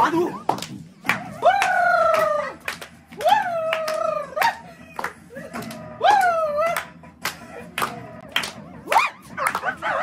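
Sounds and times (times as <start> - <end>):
hand claps: 0.4 - 9.8.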